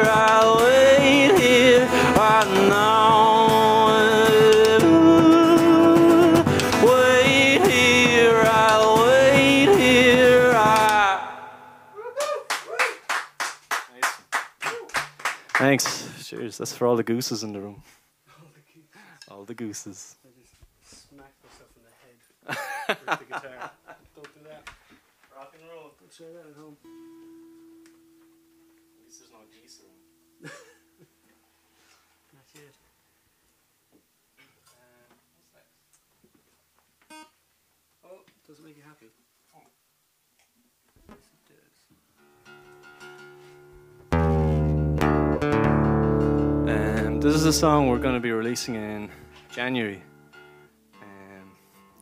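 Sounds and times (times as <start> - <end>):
man's voice: 0.0 - 11.6, 46.6 - 50.0
voiced cheer: 11.9 - 13.1
people clapping: 12.2 - 16.5
short pitched note: 44.1 - 48.2.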